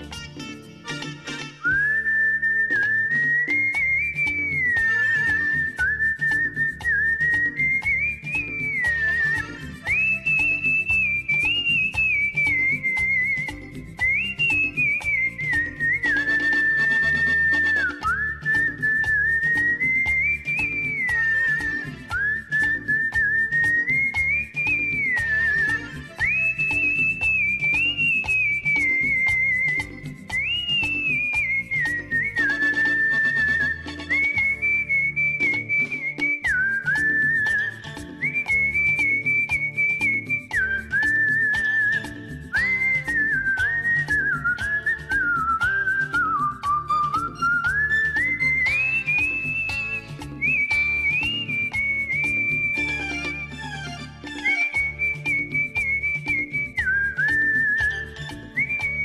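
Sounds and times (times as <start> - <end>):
backing music track with beat: 0.0 - 59.0
person whistling a melody: 0.0 - 59.0.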